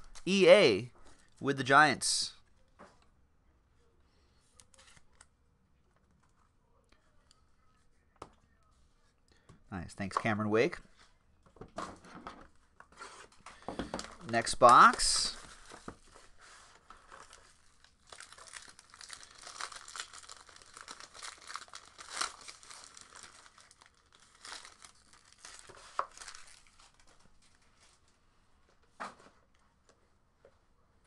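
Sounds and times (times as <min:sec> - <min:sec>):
plastic wrapper crinkling and tearing: 0:16.9 - 0:28.0.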